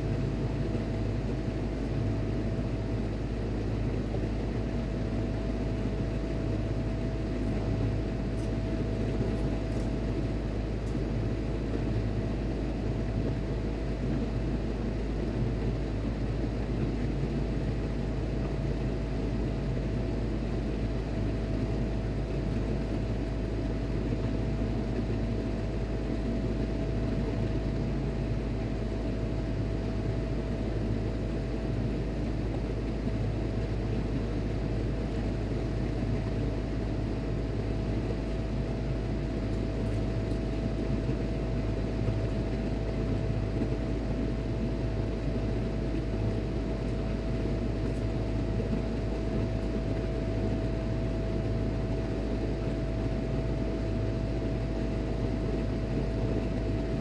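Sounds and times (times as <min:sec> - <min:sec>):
ship machinery low rumble: 0:00.0 - 0:57.0
steady machinery hum: 0:00.0 - 0:57.0.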